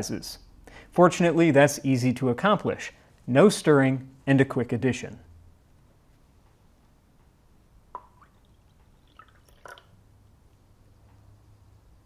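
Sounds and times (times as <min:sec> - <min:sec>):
liquid dripping into glass: 0:07.9 - 0:10.0.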